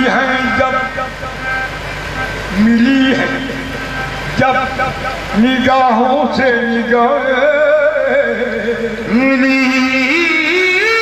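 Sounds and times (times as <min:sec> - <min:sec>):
harmonium tones: 0:00.0 - 0:11.0
man singing held note: 0:00.0 - 0:11.0.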